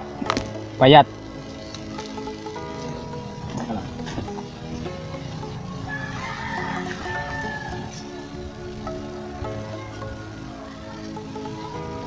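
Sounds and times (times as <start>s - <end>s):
background music: 0.0s - 12.0s
rooster crowing: 5.0s - 12.0s.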